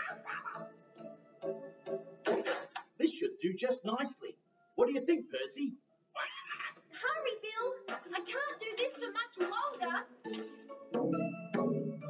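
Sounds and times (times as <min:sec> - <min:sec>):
cartoon parrot voice squawking: 0:06.2 - 0:06.9.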